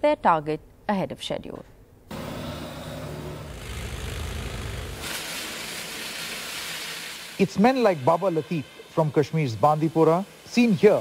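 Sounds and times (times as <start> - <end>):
drilling rig engine drone: 2.1 - 5.9
loud hydraulic hiss: 2.1 - 11.0.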